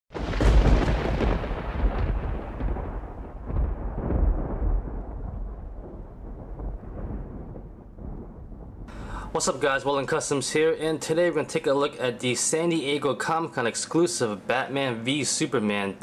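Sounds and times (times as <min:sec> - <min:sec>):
deep rumble: 0:00.2 - 0:09.2.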